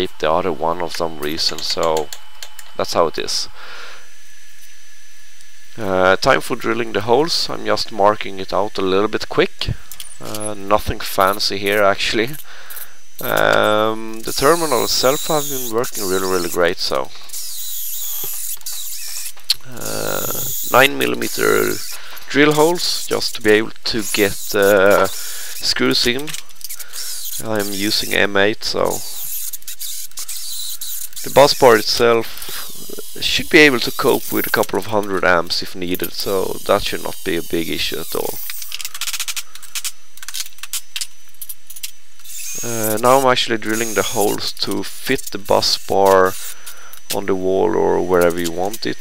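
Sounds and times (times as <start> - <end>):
steady hiss: 5.8 - 40.1, 42.2 - 49.0
electric drill cutting metal: 9.3 - 39.9, 41.7 - 49.0.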